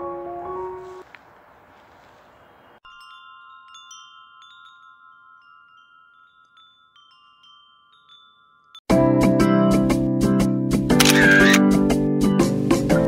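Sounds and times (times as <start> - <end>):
wind chime tinkling: 2.8 - 8.9.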